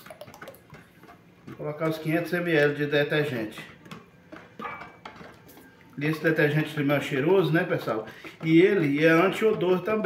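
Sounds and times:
wooden spoon stirring: 0.0s - 10.0s.

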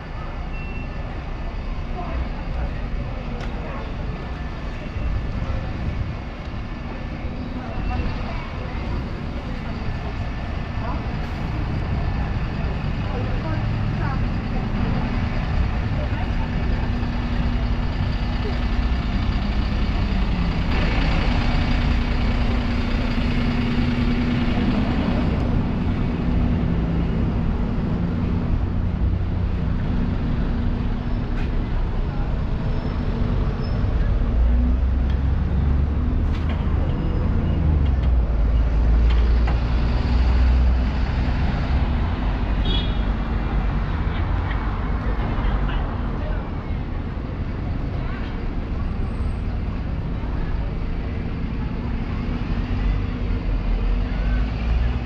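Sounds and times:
bus engines running: 0.0s - 55.0s
general traffic: 0.0s - 55.0s
people talking: 1.8s - 6.0s, 7.0s - 23.2s, 31.4s - 34.7s, 44.0s - 55.0s.

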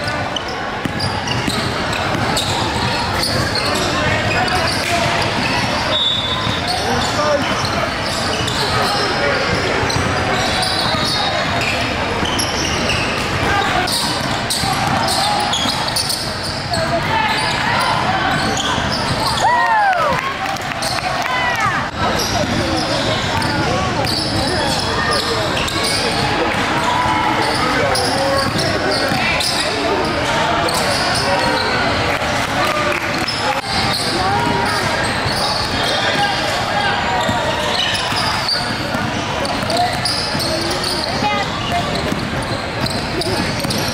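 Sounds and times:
sneakers squeaking on court: 0.0s - 19.4s, 20.5s - 32.0s, 32.7s - 43.9s
indistinct shouts and chatter: 0.0s - 43.9s
basketball bouncing: 0.8s - 3.6s, 12.2s - 17.1s, 28.4s - 29.4s, 37.2s - 43.9s.

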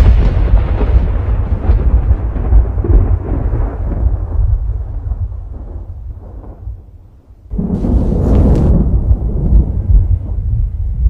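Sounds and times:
deep rolling thunder: 0.0s - 11.0s.

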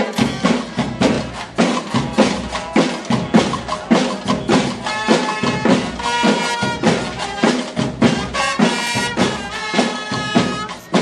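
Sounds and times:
marching snare drums: 0.0s - 11.0s.

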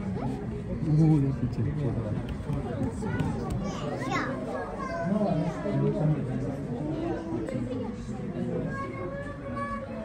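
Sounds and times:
children and people talking: 0.0s - 10.0s.

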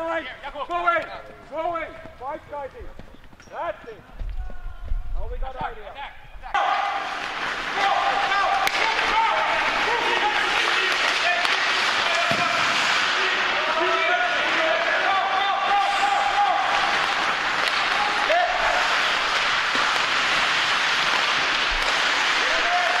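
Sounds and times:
many voices calling and shouting: 3.6s - 19.8s
skates on ice: 6.5s - 23.0s.

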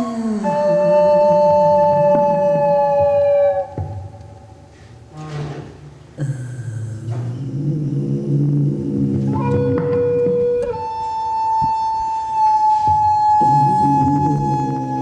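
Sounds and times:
long held high tone: 0.0s - 4.6s, 9.2s - 15.0s
low layered drone: 12.3s - 15.0s.

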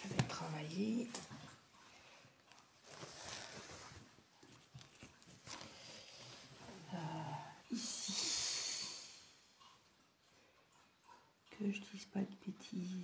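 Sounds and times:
fabric rustling: 2.5s - 6.9s.

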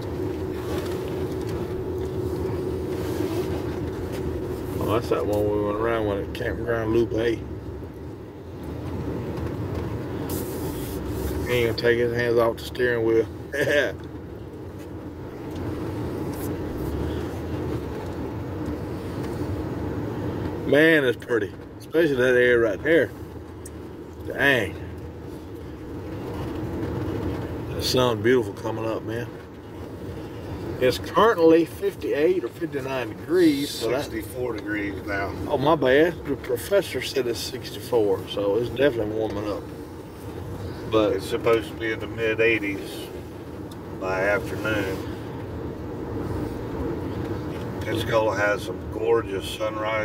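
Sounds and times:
car engine and tyre noise: 0.0s - 50.0s.

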